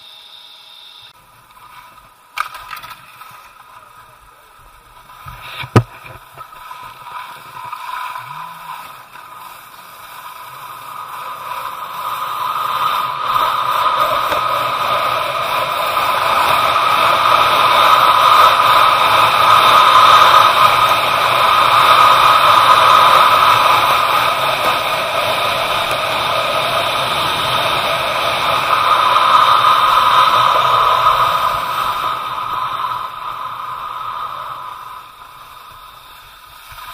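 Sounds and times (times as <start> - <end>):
skis sliding on packed snow: 1.2 - 36.9.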